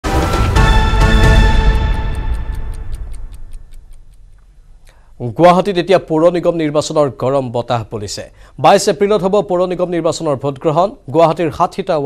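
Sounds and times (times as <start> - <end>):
news theme music: 0.0 - 4.1
clock ticking: 0.8 - 4.5.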